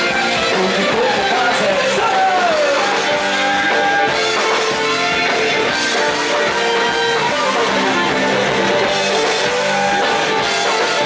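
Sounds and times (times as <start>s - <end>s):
live folk band playing dance music: 0.0s - 11.0s.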